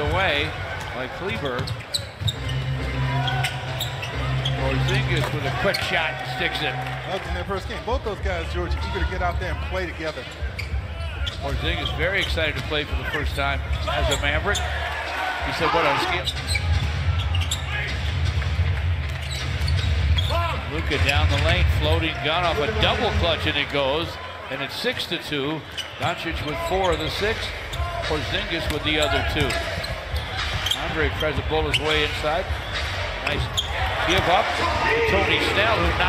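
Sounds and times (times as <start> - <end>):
low arena noise: 0.0 - 36.0.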